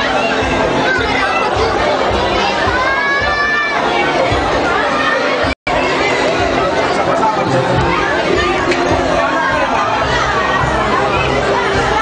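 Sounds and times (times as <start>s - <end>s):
crowd talking and laughing: 0.0s - 12.0s.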